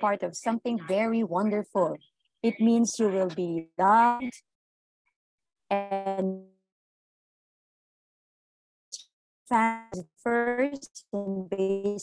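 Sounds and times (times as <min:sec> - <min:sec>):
woman speaking: 0:00.0 - 0:04.5, 0:05.7 - 0:06.5, 0:09.5 - 0:12.0.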